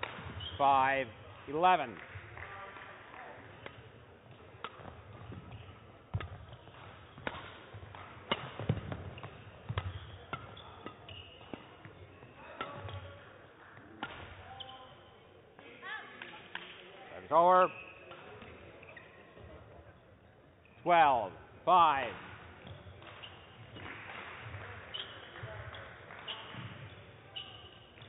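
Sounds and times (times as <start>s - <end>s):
racket striking shuttlecock: 0.0s - 0.5s, 4.5s - 11.9s, 12.6s - 13.0s
shoes squeaking on court: 0.0s - 0.7s, 3.5s - 13.2s, 14.0s - 15.2s, 17.5s - 20.9s, 22.6s - 28.0s.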